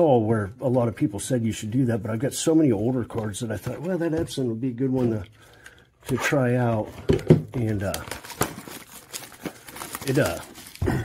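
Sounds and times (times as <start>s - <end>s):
card sleeves faint rustles: 7.6s - 10.8s.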